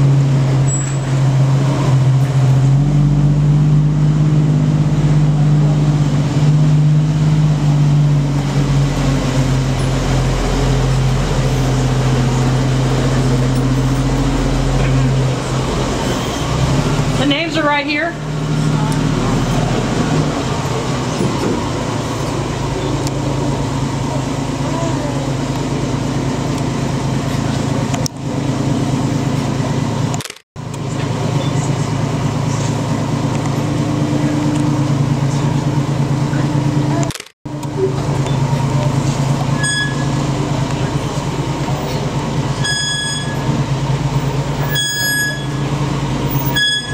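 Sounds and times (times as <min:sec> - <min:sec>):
tram engine droning: 0:00.0 - 0:46.9
short high tones: 0:39.6 - 0:40.2, 0:44.7 - 0:45.7.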